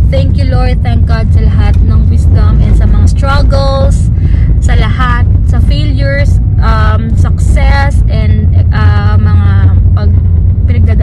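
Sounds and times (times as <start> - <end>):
car cabin rumble: 0.0 - 11.0
woman talking: 0.1 - 11.0.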